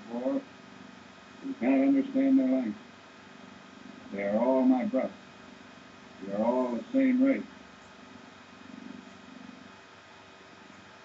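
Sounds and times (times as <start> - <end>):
low fluttering buzz: 0.0 - 11.0
old film soundtrack hiss and crackle: 0.0 - 11.0.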